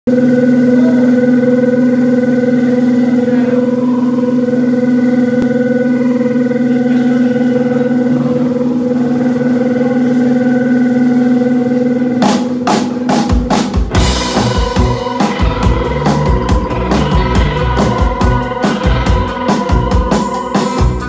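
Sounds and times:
electric guitar drone: 0:00.1 - 0:21.0.

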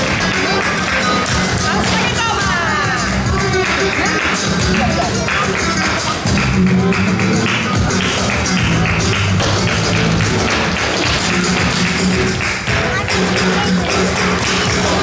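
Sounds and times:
flamenco guitar: 0:00.0 - 0:15.0
percussion: 0:00.0 - 0:15.0.

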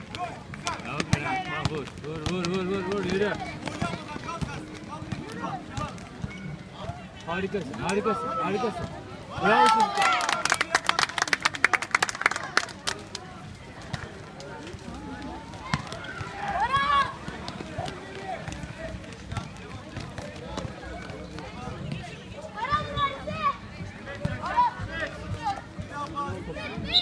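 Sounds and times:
basketball game din: 0:00.0 - 0:27.0
players and spectators shouting: 0:06.8 - 0:10.5, 0:14.7 - 0:27.0
quick clapping: 0:09.6 - 0:13.2.

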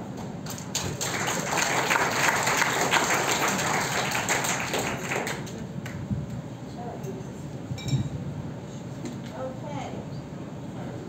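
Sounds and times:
audience applauding: 0:00.5 - 0:06.0.

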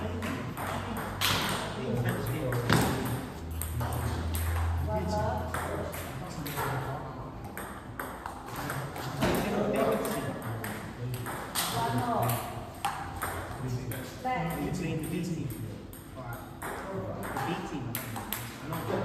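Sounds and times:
table tennis balls clicking: 0:00.0 - 0:19.0.

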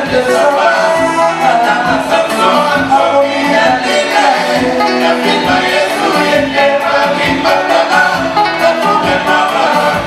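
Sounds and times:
live band music: 0:00.0 - 0:10.0
singers singing in chorus: 0:00.0 - 0:10.0.

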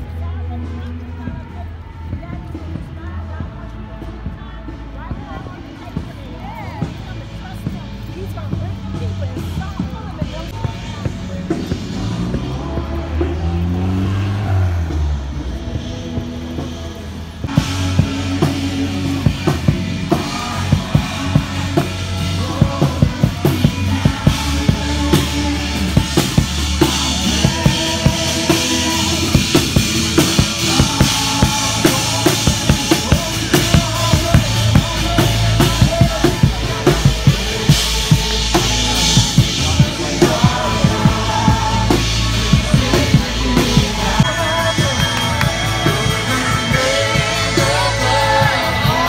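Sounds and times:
deep bass rumble: 0:00.0 - 0:49.0
distant live band music: 0:00.0 - 0:49.0.

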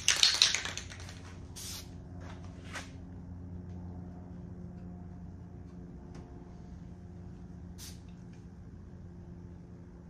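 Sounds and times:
spray can rattle: 0:00.0 - 0:01.9
spray can hissing: 0:00.2 - 0:01.9, 0:07.8 - 0:08.1.

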